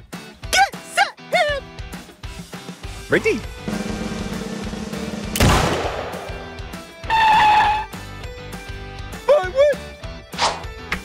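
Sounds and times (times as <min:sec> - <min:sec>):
background music: 0:00.0 - 0:11.0
starting pistol shot: 0:05.3 - 0:06.9.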